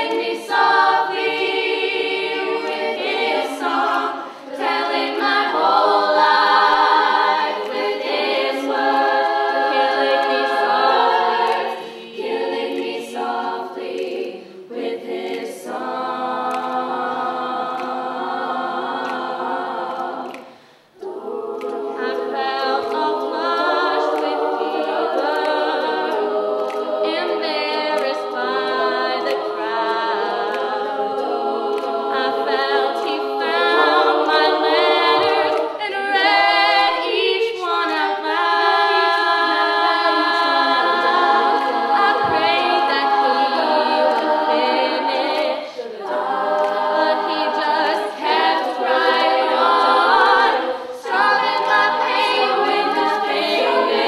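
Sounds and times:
female a cappella group singing: 0:00.0 - 0:54.0.

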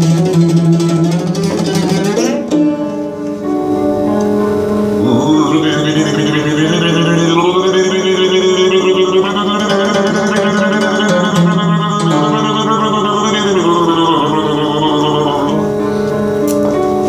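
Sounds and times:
electronic organ chords with vibrato: 0:03.0 - 0:17.0.

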